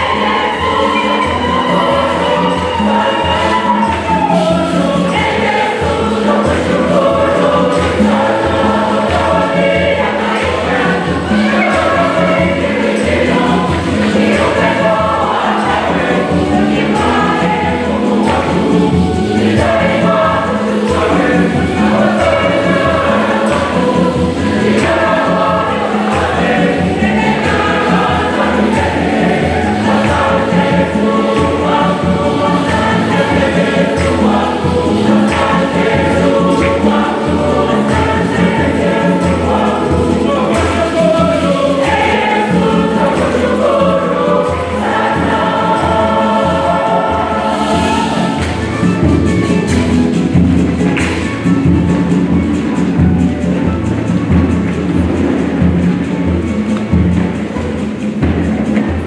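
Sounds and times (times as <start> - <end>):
church choir singing a hymn: 0.0 - 59.0.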